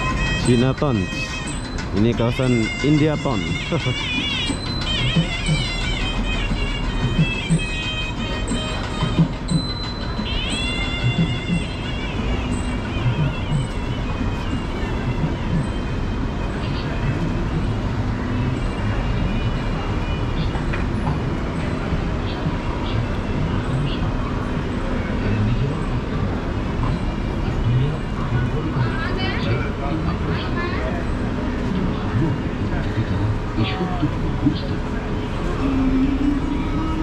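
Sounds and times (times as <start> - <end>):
traffic hum: 0.0 - 37.0.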